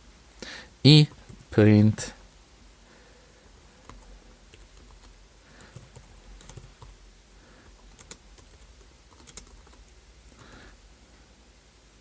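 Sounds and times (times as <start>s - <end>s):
typing on computer keyboard: 3.8s - 7.0s, 7.8s - 10.5s.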